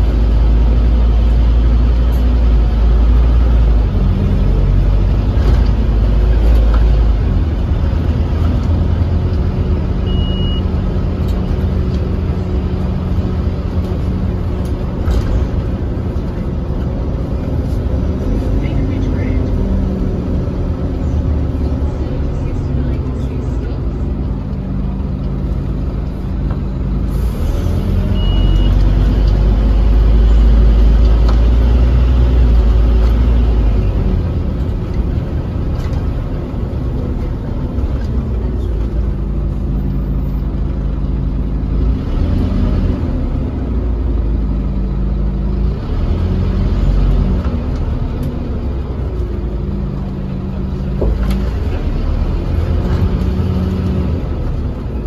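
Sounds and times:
bus diesel engine rumble: 0.0s - 55.0s.

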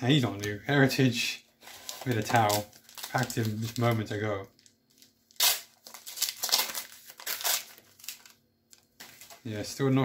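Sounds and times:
wrapper crinkling: 1.7s - 9.5s
wrapper ripping: 1.8s - 4.0s, 4.6s - 8.4s.

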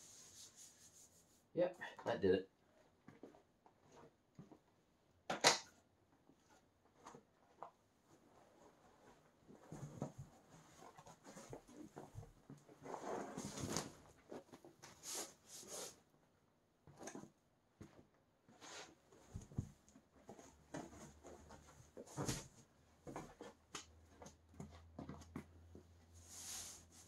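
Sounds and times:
carpet swishing on concrete: 0.0s - 1.5s, 14.9s - 16.0s, 26.2s - 27.0s.

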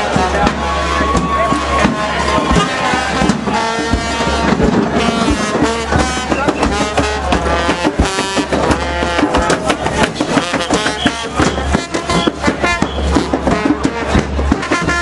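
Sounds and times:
crowd voices: 0.0s - 15.0s
pitched instrument notes: 0.0s - 15.0s
quick busy drum beat: 0.0s - 15.0s.

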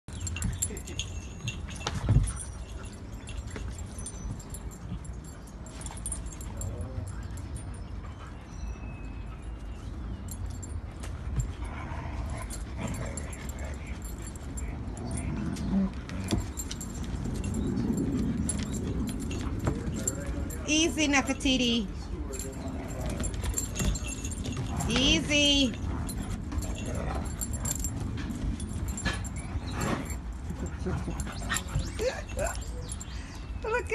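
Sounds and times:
metal dog tags jingling: 0.1s - 33.9s.

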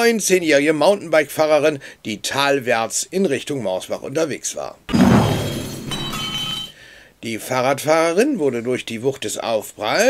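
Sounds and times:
heavy crash impact: 4.9s - 6.4s
glass shattering: 4.9s - 6.8s.

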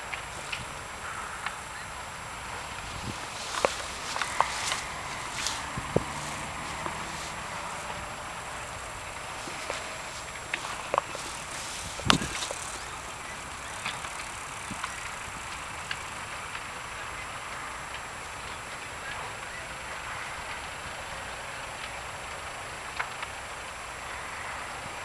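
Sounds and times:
fire popping and crackling: 0.0s - 25.0s
large fire rushing: 0.0s - 25.0s.

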